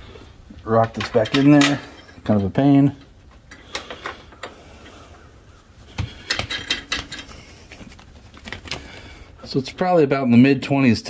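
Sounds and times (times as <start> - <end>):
metal clicks and knocks: 0.7 - 4.6, 5.9 - 7.5.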